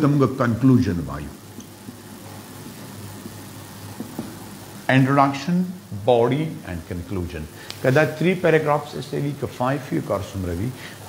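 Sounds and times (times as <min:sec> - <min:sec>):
even hiss: 0:00.0 - 0:11.0
low background hum: 0:00.0 - 0:11.0.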